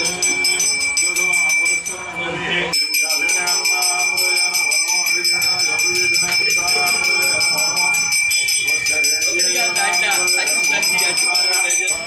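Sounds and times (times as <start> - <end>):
bells ringing rapidly: 0.0 - 12.0
voices singing: 0.0 - 12.0.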